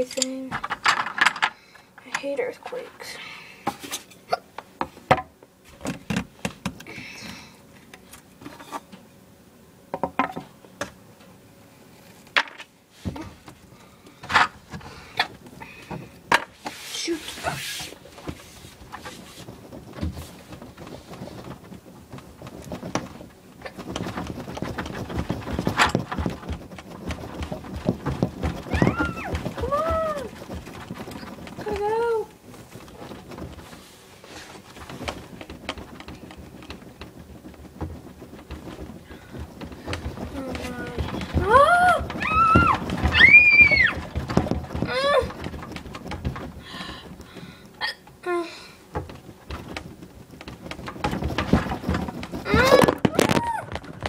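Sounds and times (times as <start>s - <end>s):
small objects clicking and knocking: 0.0s - 2.3s, 19.1s - 33.8s, 34.6s - 48.2s, 48.9s - 54.0s.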